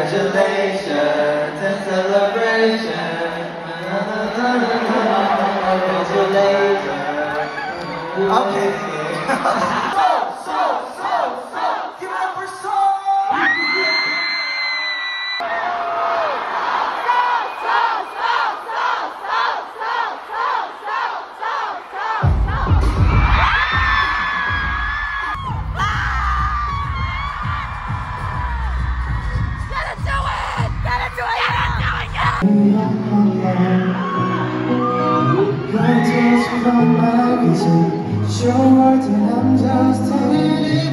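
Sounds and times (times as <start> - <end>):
crowd cheering and chanting: 0.0 - 40.9
crowd screaming: 4.3 - 10.6, 12.6 - 20.7, 21.6 - 32.2, 33.2 - 38.5
loud music with heavy bass: 22.2 - 32.5.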